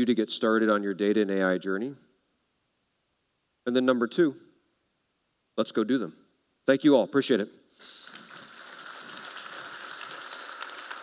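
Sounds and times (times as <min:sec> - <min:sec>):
audience applauding: 0:07.8 - 0:11.0.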